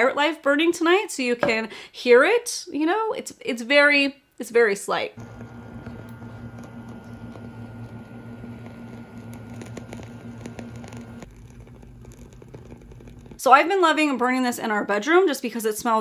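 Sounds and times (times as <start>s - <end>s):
candle wick crackling: 5.2s - 13.4s.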